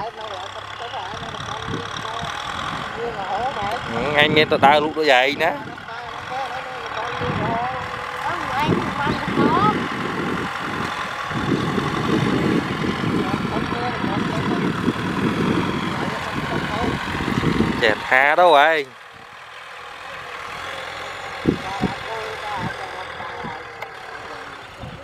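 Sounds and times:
tractor diesel engine under load: 0:00.0 - 0:25.0.

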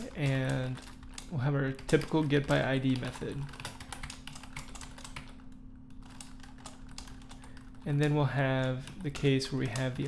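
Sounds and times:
typing on computer keyboard: 0:00.0 - 0:10.0.

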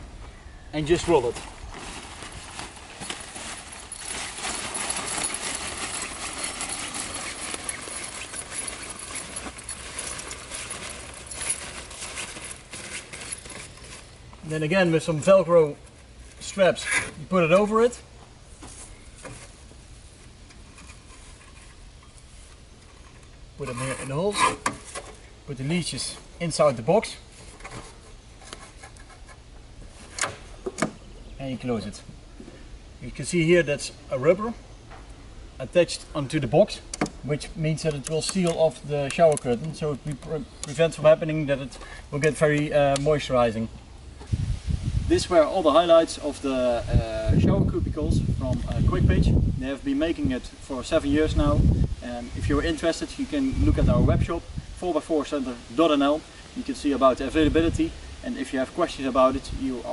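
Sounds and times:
canvas curtain rustling: 0:00.8 - 0:15.1.

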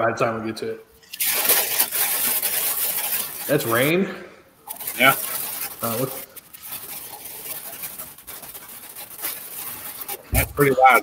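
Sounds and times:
rain on a tin roof: 0:01.2 - 0:03.9, 0:04.7 - 0:11.0.

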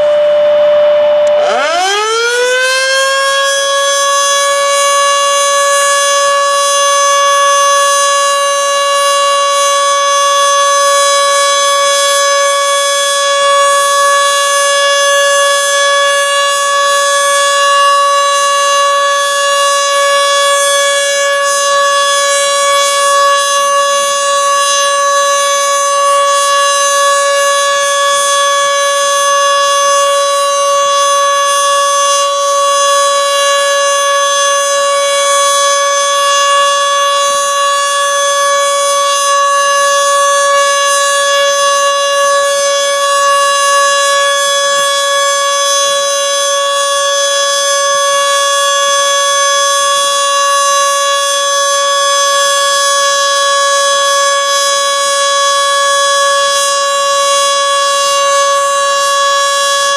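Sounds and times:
siren steady wailing tone: 0:00.0 - 0:59.9.

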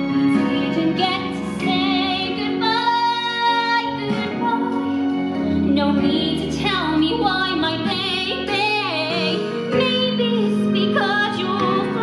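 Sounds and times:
instrumental accompaniment: 0:00.0 - 0:12.0
woman singing with vibrato: 0:00.2 - 0:04.9, 0:05.6 - 0:12.0.

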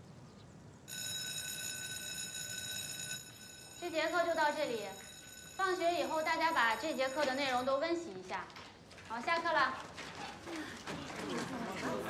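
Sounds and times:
electric school bell ringing: 0:00.9 - 0:08.3.

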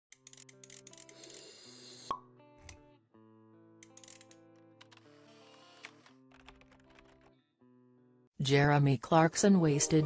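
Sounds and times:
soft background music: 0:00.1 - 0:10.0.

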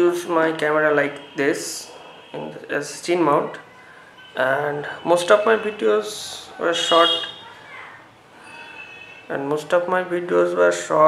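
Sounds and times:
man speaking: 0:00.0 - 0:03.6, 0:04.4 - 0:07.4, 0:09.3 - 0:11.0.

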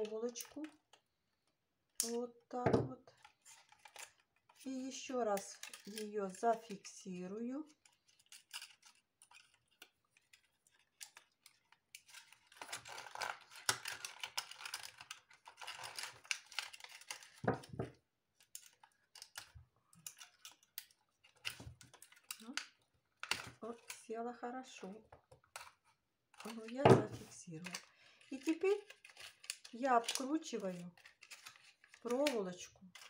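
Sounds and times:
plastic rustling: 0:07.8 - 0:24.1, 0:24.7 - 0:33.0
plastic bottle crinkling: 0:25.2 - 0:33.0.

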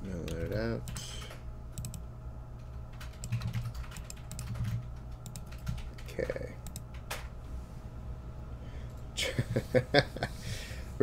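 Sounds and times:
faint steady hum: 0:00.0 - 0:11.0
keyboard and mouse clicks: 0:00.2 - 0:02.0, 0:02.6 - 0:07.3.

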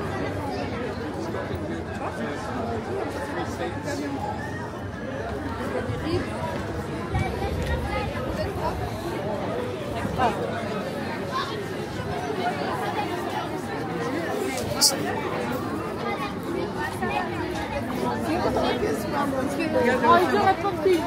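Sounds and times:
crowd talking indistinctly: 0:00.0 - 0:21.0.

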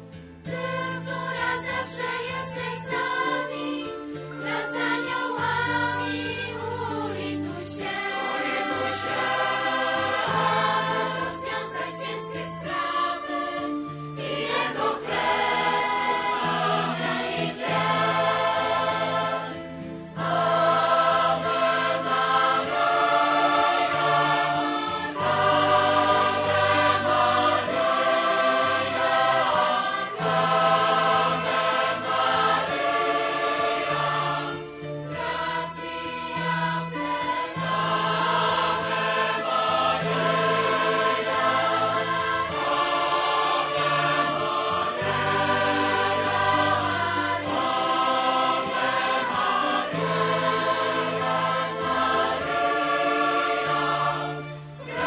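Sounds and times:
choir singing held notes: 0:00.0 - 0:55.0.

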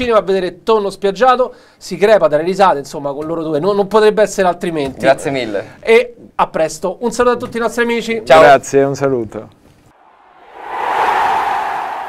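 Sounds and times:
rushing whoosh: 0:09.9 - 0:12.0.

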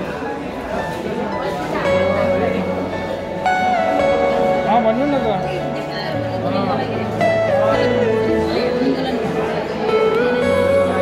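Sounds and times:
sliding melody: 0:00.0 - 0:11.0.

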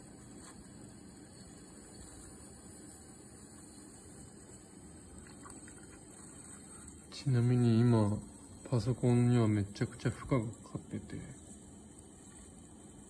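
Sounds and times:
laptop speaker high-pitched hiss: 0:00.0 - 0:13.0.

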